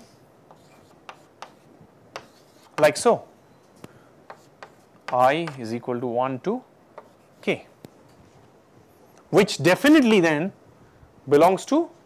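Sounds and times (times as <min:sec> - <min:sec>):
chalk tapping and scraping on board: 0:00.5 - 0:03.0, 0:04.2 - 0:05.7, 0:06.9 - 0:07.6.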